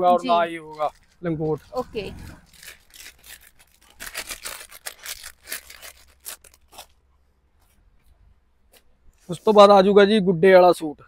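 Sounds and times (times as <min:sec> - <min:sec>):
plastic packaging crinkling: 0:02.4 - 0:07.0.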